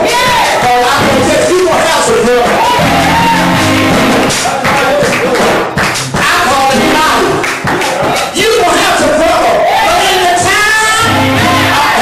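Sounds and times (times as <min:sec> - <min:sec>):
man singing into microphone: 0:00.0 - 0:03.6, 0:08.2 - 0:12.0
congregation voices: 0:00.0 - 0:12.0
gospel band playing: 0:00.0 - 0:12.0.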